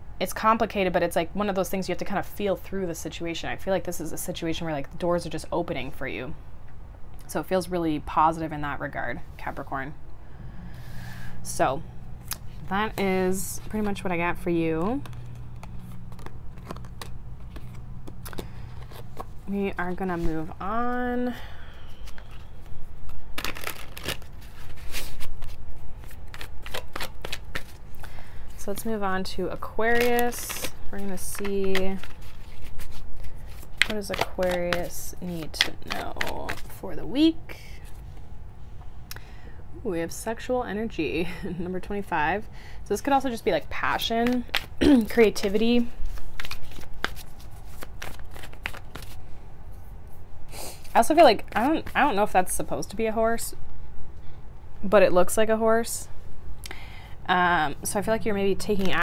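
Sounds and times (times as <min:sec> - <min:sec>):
cards being shuffled: 0:12.3 - 0:21.0, 0:21.8 - 0:29.0, 0:29.6 - 0:36.8, 0:44.0 - 0:49.2, 0:50.8 - 0:52.2.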